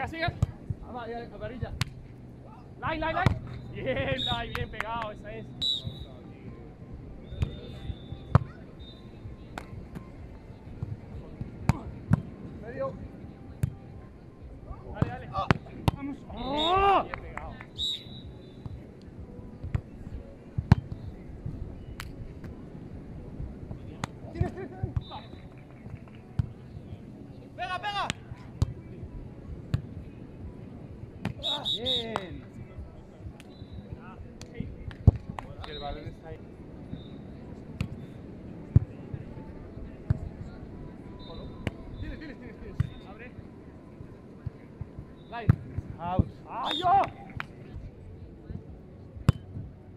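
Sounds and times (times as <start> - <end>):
players shouting: 46.5 - 47.4.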